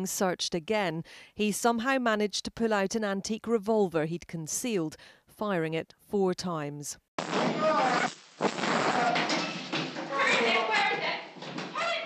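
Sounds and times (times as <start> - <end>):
raised voices and commotion: 7.4 - 12.0.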